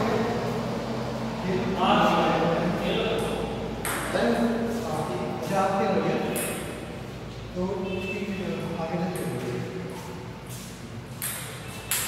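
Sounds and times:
table tennis ball click: 11.2 - 12.0.

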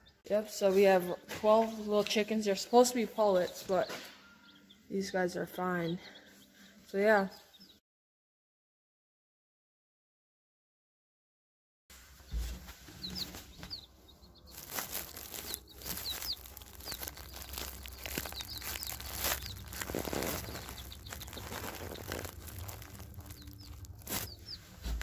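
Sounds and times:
baby chicks peeping: 0.0 - 7.8, 12.2 - 25.0
rustling in wood shavings: 12.0 - 25.0.

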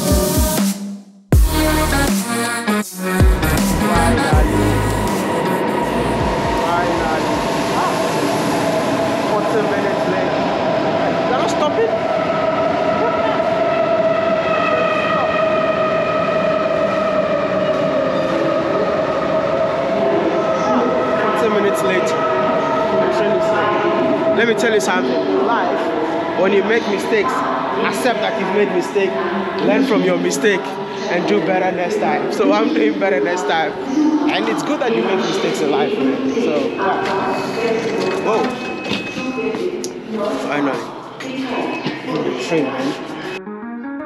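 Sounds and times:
higher whining tones: 3.3 - 26.1
train rumbling with whine: 3.3 - 29.7.

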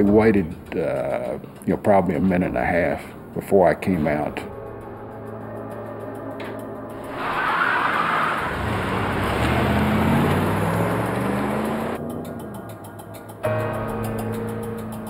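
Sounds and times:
car engine accelerating: 6.9 - 14.2.

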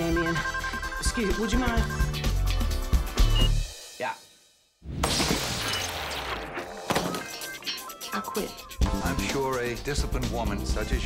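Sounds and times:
music: 0.0 - 4.8, 6.2 - 11.0
phone smashing and shattering: 5.0 - 7.8.

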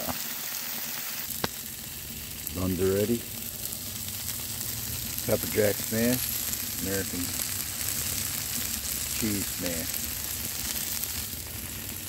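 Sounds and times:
patties sizzling on griddle: 0.0 - 12.0.

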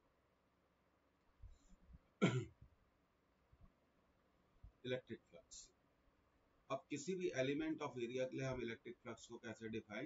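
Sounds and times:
man clearing his throat: 2.2 - 2.5.

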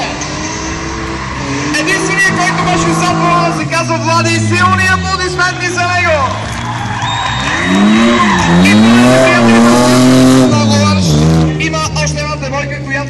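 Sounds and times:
car engine revving hard: 0.0 - 12.4
tyres squealing: 0.2 - 11.4.

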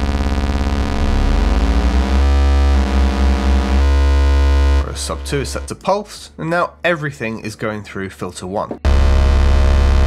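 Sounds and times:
sawtooth synth bass note: 0.0 - 5.7, 8.8 - 10.0.

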